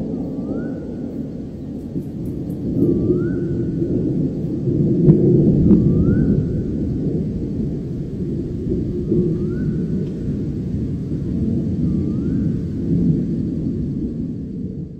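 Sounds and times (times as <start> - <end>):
rolling thunder rumble: 0.0 - 14.9.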